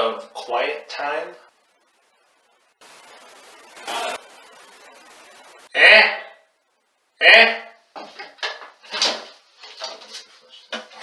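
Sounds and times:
room noise hiss: 0.0 - 11.0
short burst of noise: 1.5 - 5.8.

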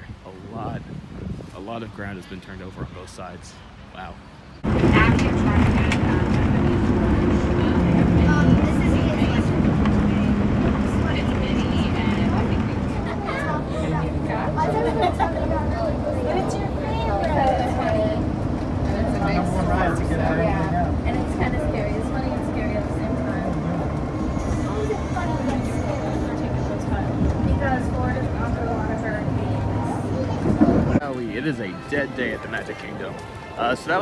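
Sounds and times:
faint voices: 1.5 - 34.0
monorail rumble and motor hum: 4.6 - 31.1.

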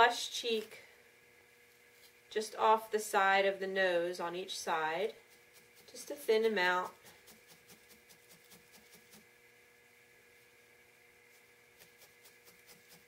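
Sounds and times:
felting needle jabbing wool: 4.5 - 9.3, 11.2 - 13.0.

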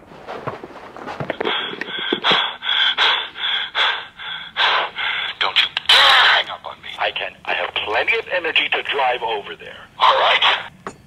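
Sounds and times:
person gasping for breath: 1.3 - 5.4.

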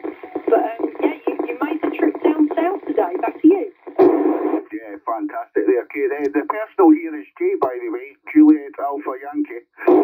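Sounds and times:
burst of radio noise: 0.0 - 4.9, 9.8 - 10.0
speech over radio speaker: 0.0 - 10.0.

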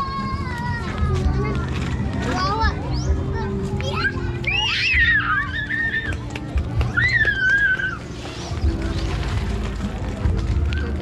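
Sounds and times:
children's voices: 0.0 - 8.8.

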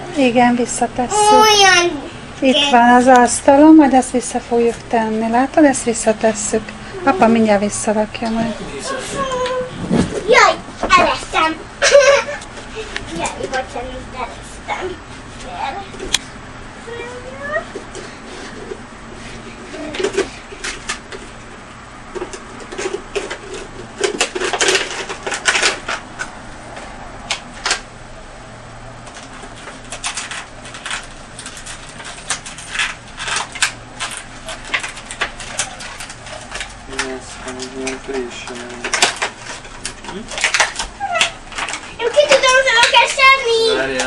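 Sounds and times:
child's voice: 1.1 - 2.9, 6.9 - 7.4, 8.6 - 11.6, 13.1 - 16.1, 16.8 - 17.8, 42.0 - 44.0
gift packaging crinkling: 29.1 - 44.0
adult's voice: 43.5 - 44.0.

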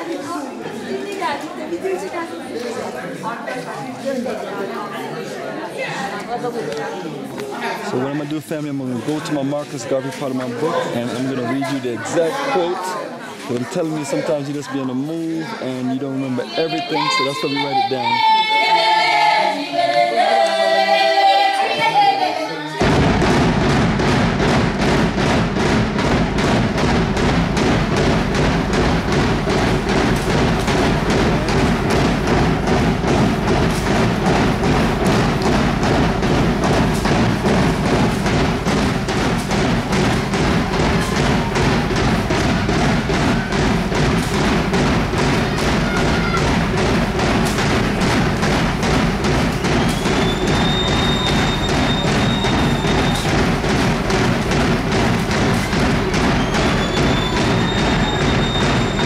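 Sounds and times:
fast steady drumbeat: 22.8 - 59.0.

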